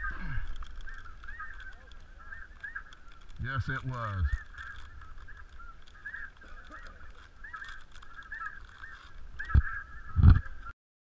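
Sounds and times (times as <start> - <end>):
geese honking: 0.0 - 10.7.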